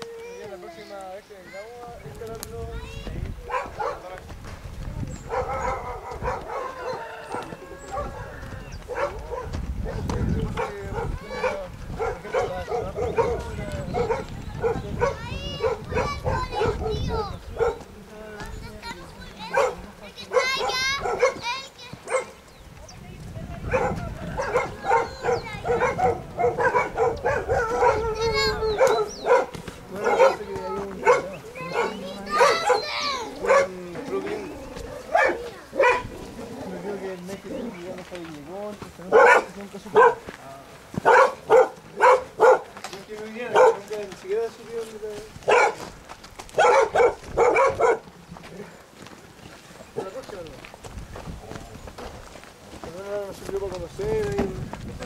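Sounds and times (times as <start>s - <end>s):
dogs barking: 3.4s - 4.2s, 5.1s - 18.0s, 18.8s - 22.5s, 23.6s - 37.8s, 39.0s - 40.4s, 41.0s - 42.8s, 43.4s - 44.1s, 45.4s - 48.7s, 49.9s - 50.2s
indistinct voices: 4.8s - 40.8s.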